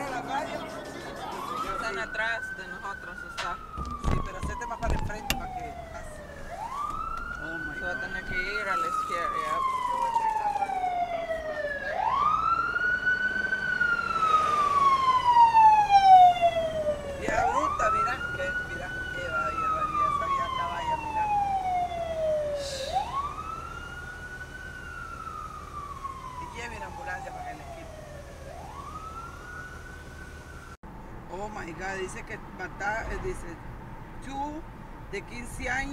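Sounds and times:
ambulance siren wailing: 0.0 - 30.8.

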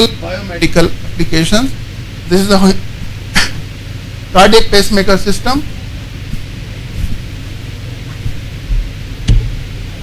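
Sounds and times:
low hum and hiss: 0.0 - 10.0
low thump: 8.2 - 9.6.

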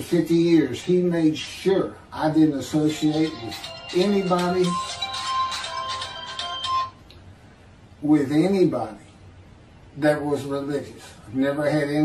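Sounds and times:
phone ringtone melody: 2.7 - 7.0.

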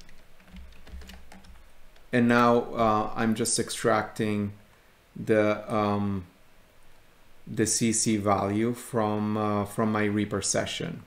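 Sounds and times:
faint keyboard keystrokes: 0.0 - 2.1.

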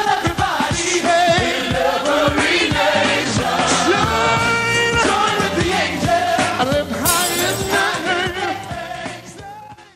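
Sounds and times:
choir singing gospel song: 0.0 - 6.6.

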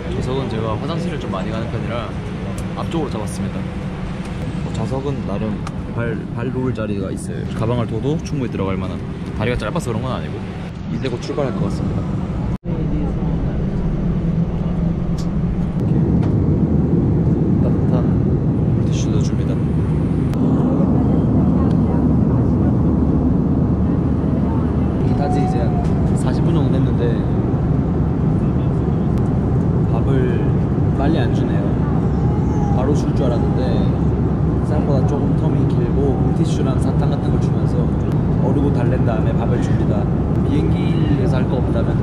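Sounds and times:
airliner engine noise in cabin: 0.0 - 42.0
faint voices: 20.4 - 27.4, 29.9 - 42.0.

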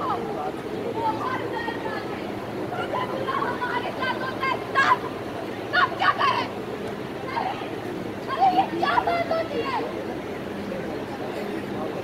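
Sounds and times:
outdoor crowd murmur: 0.0 - 12.0.

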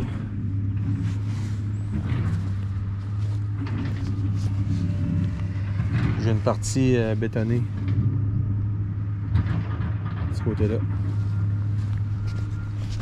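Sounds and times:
tractor engine running: 0.0 - 13.0.

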